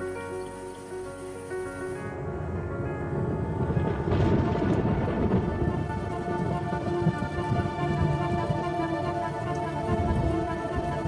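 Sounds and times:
background music sustained tones: 0.0s - 11.0s
heavy rain: 0.0s - 11.0s
thunder rumbling: 1.6s - 11.0s.

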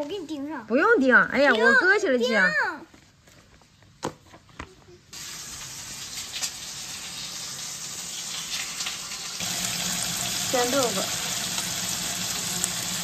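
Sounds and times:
tofu sizzling in oil: 5.2s - 13.0s.

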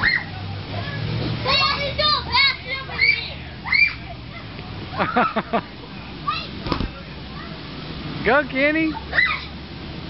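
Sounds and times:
children calling and squealing: 0.0s - 7.9s, 8.8s - 9.7s
blower fan hum: 0.0s - 10.0s.

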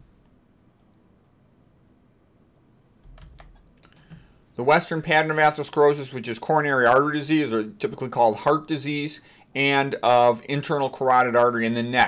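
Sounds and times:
computer keyboard clicks: 3.0s - 4.2s.

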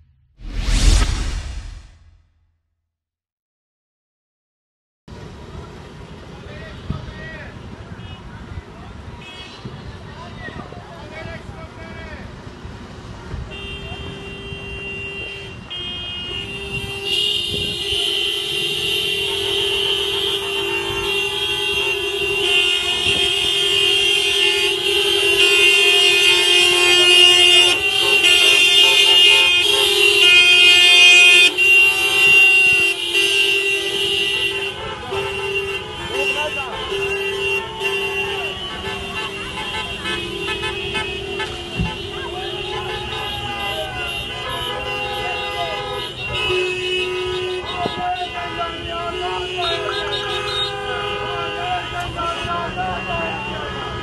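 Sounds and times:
car horns honking: 13.5s - 54.0s
people's voices: 34.7s - 46.1s, 47.4s - 53.8s.

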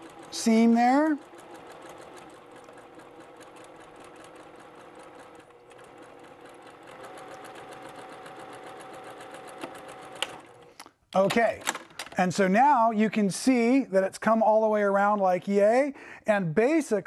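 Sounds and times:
sewing machine needle ticking: 0.0s - 10.6s
sewing machine motor hum: 0.0s - 10.8s.

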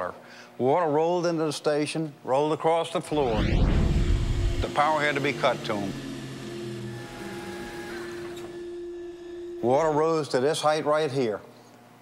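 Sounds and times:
electric pump motor humming: 3.1s - 10.1s.

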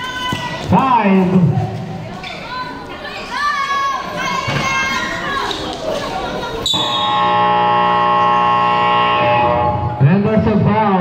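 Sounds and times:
scoreboard buzzer: 6.7s - 10.0s.

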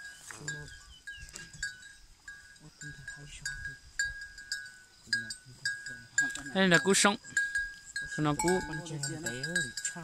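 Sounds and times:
bell clinking: 0.0s - 10.0s.

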